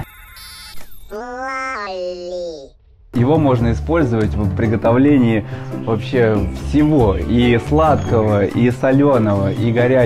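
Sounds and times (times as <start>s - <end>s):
high electronic chirps: 0.0s - 1.2s.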